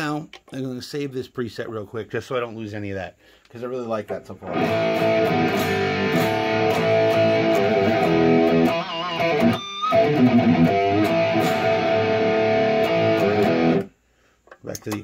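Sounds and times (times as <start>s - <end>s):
distorted electric guitar chords: 4.4s - 13.9s.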